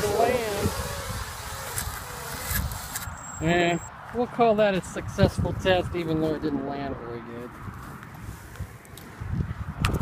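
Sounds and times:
drone propellers buzzing: 0.0s - 3.9s
wind rumble on microphone: 3.9s - 10.0s.

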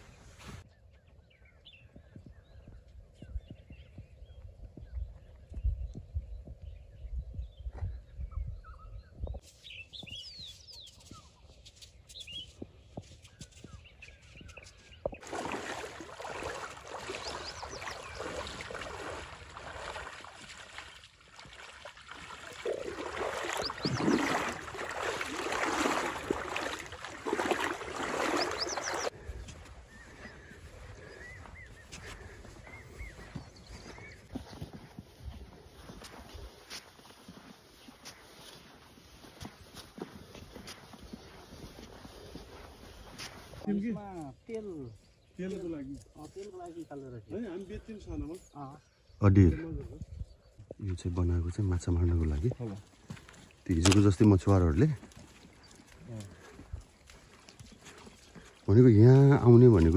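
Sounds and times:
wind rumble on microphone: 0.0s - 15.2s, 49.1s - 50.9s
feet splashing through river: 9.4s - 43.7s, 51.6s - 59.9s
short bird calls: 27.6s - 34.3s.

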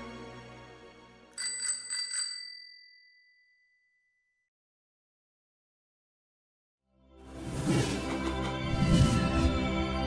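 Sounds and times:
music: 0.0s - 1.6s, 6.8s - 10.0s
bicycle bell ringing: 1.4s - 4.4s.

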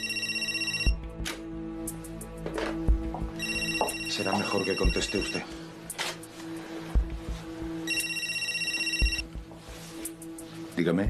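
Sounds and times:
phone electronic ring: 0.0s - 1.0s, 3.4s - 5.5s, 7.9s - 9.3s.

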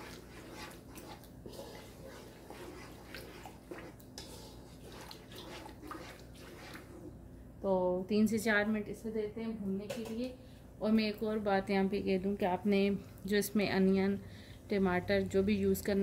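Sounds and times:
wooden spoon stirring: 0.0s - 7.2s.

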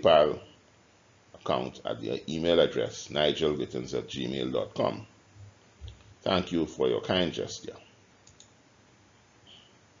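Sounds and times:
faint clicks: 8.2s - 8.6s.

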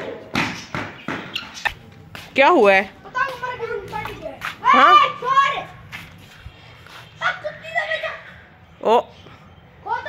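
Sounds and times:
running footsteps on paved floor: 0.2s - 7.6s.

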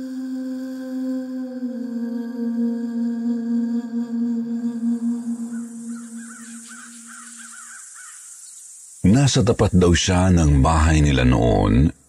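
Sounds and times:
faint hiss: 4.2s - 12.0s
crow cawing: 5.9s - 8.3s.

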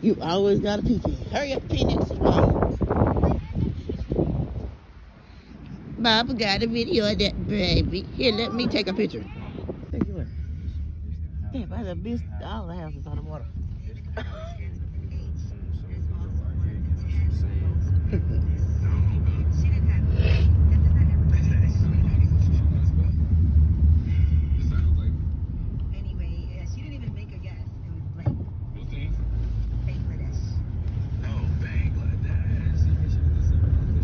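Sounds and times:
car engine and road noise: 0.0s - 34.0s.

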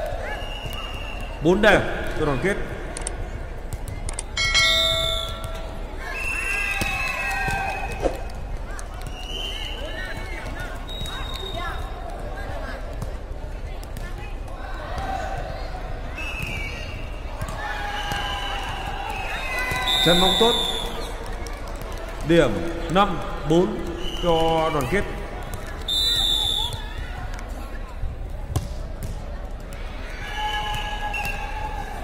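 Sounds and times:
players calling out: 4.4s - 8.2s, 17.5s - 21.3s.

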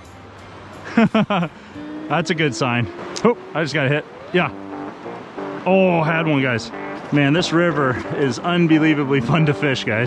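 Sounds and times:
river rushing over rocks: 0.0s - 10.0s
man laughing: 0.9s - 3.5s.

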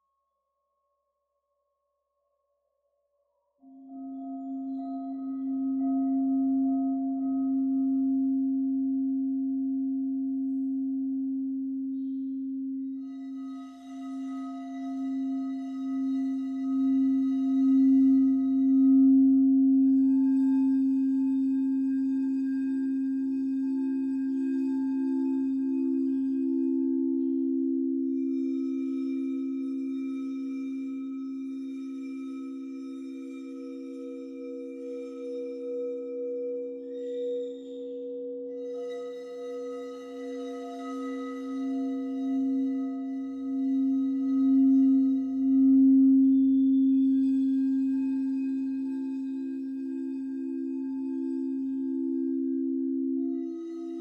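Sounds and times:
low singing bowl tone: 3.5s - 54.0s
higher crystal singing bowl: 3.6s - 54.0s.

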